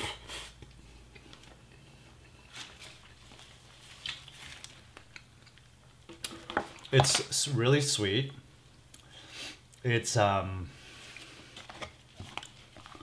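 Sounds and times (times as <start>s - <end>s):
wet chewing: 11.2s - 13.0s.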